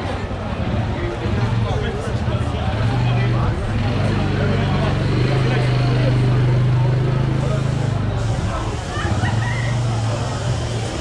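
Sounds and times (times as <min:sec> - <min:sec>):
passers-by talking: 0:00.0 - 0:11.0.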